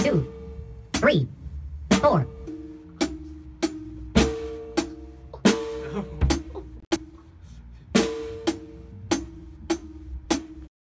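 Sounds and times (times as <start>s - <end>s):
drum kit playing: 0.0s - 10.7s.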